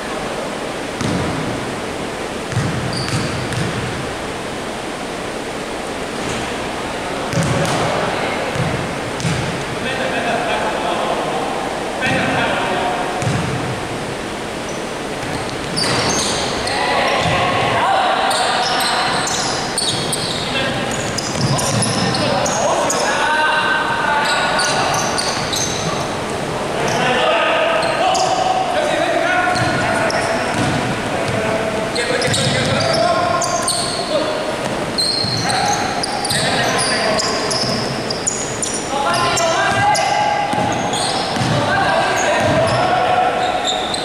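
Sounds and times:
basketball bouncing on wooden floor: 1.0 - 1.4, 2.5 - 3.9, 7.3 - 7.8, 8.5 - 9.5, 13.2 - 13.6, 30.5 - 30.9, 40.5 - 41.6, 42.4 - 42.8
players calling out: 14.6 - 44.0.

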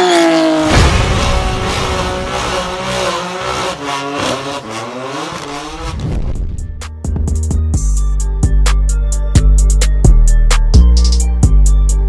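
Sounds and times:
car engine revving high: 0.0 - 6.8.

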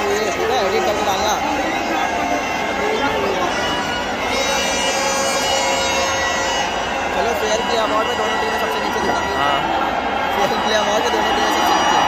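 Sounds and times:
reedy horn-like tone: 0.0 - 9.8
stadium crowd murmur: 0.0 - 12.0.

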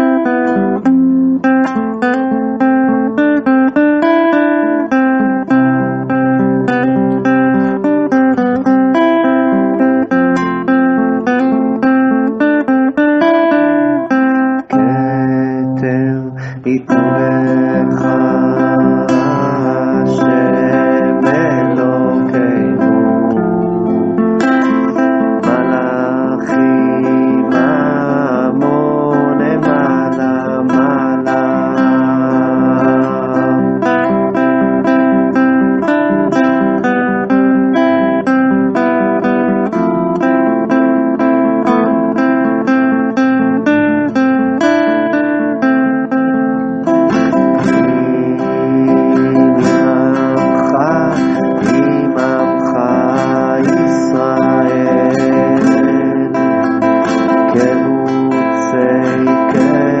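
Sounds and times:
acoustic guitar strumming: 0.0 - 60.0
voices singing along: 14.7 - 34.3, 47.1 - 60.0.

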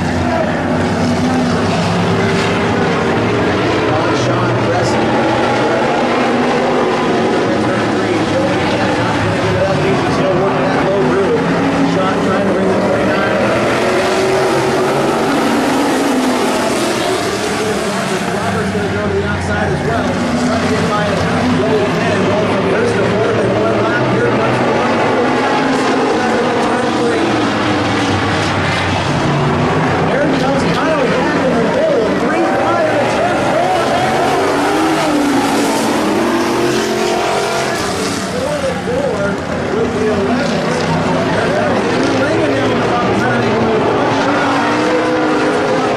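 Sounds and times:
race car engines racing: 0.0 - 45.9.

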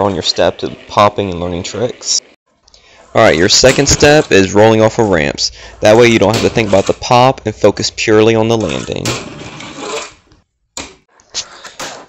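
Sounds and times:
small wheels rolling on ramp: 2.9 - 7.2, 8.4 - 10.3.

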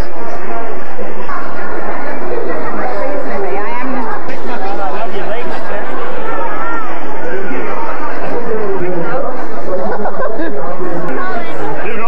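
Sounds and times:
people talking at once: 0.0 - 12.0.

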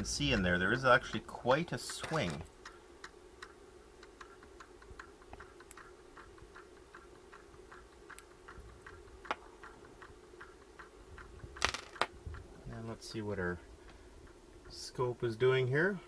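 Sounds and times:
faint rapid ticking: 0.0 - 16.0
steady low hum: 0.0 - 16.0.

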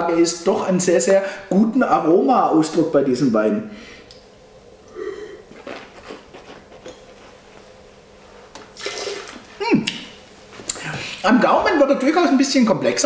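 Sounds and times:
slurping wine: 8.7 - 10.0.

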